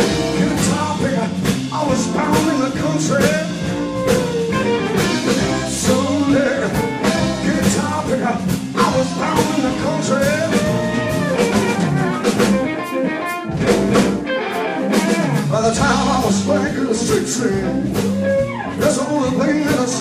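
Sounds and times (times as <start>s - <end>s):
bass: 0.0s - 20.0s
drum kit: 0.0s - 20.0s
electric guitar: 0.0s - 20.0s
electric violin: 3.6s - 5.7s, 10.4s - 15.5s.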